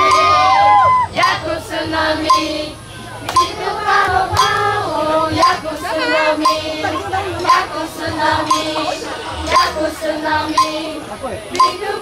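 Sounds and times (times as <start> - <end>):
children singing together: 1.1 - 12.0.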